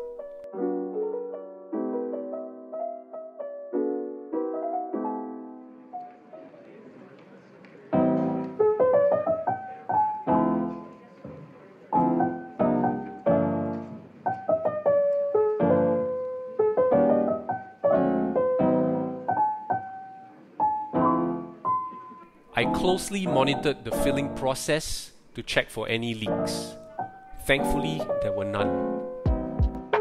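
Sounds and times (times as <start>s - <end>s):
soft piano music: 0.0s - 30.0s.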